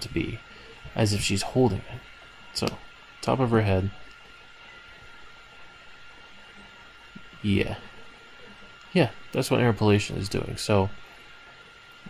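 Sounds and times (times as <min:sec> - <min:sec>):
faint steady whine: 0:00.0 - 0:12.0.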